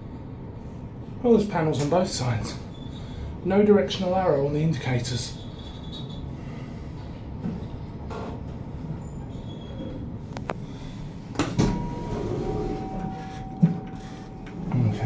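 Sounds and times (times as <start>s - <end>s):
lift running rumble: 6.2s - 15.0s
lift doors thud: 11.4s - 14.8s.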